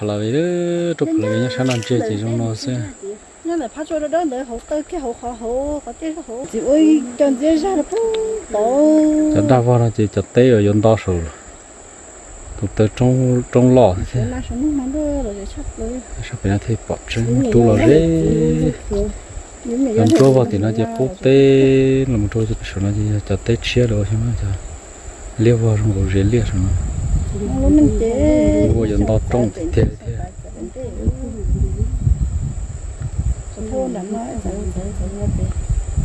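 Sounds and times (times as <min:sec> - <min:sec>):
person speaking: 0:00.0 - 0:03.2, 0:04.9 - 0:11.4, 0:16.4 - 0:24.4, 0:27.4 - 0:31.9
thin high whine: 0:00.0 - 0:03.6, 0:16.3 - 0:26.8
faint voices: 0:00.0 - 0:11.5, 0:12.6 - 0:24.5, 0:27.3 - 0:32.0
insects chirring: 0:00.0 - 0:36.0
person chanting: 0:00.9 - 0:02.4, 0:17.2 - 0:19.1, 0:19.7 - 0:22.1.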